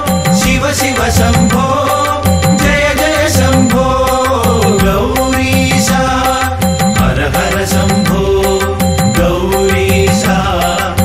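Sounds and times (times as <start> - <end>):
devotional song with steady beat: 0.0 - 11.0.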